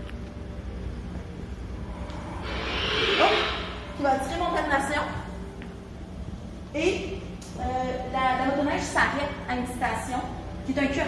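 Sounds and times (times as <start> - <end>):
short rising tone: 2.0 - 4.0
whoosh sound effect: 2.3 - 4.0.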